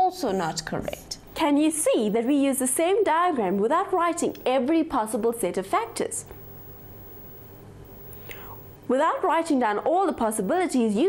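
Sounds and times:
woman speaking: 0.0s - 6.3s, 8.9s - 11.0s
faint steady hum: 0.0s - 11.0s.

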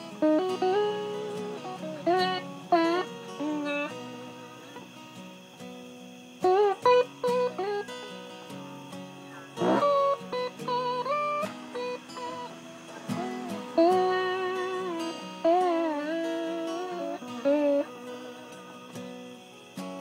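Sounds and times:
acoustic guitar strumming: 0.0s - 20.0s
bluesy slide guitar: 0.0s - 20.0s.

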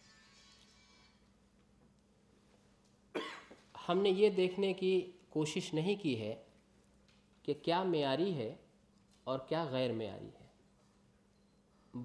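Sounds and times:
man coughing into a microphone: 3.1s - 3.6s.

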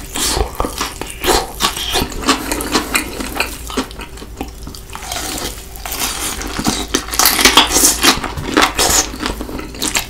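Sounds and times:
person chewing: 0.0s - 10.0s.

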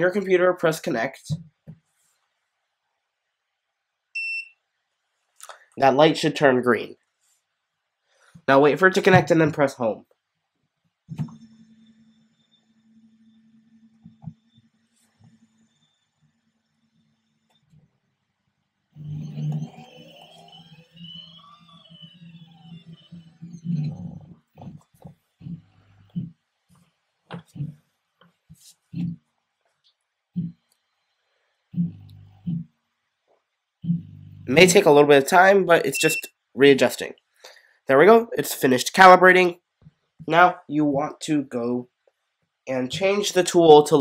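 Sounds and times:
robot arm stepper motors whining: 11.1s - 17.9s, 19.0s - 26.3s, 30.4s - 32.7s.

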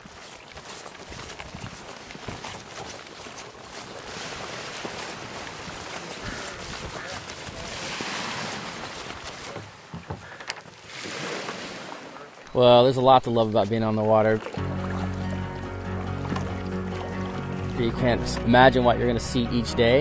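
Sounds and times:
footsteps on concrete: 0.0s - 7.7s
small waves lapping: 0.0s - 18.7s
people talking: 12.5s - 14.5s, 17.8s - 20.0s.

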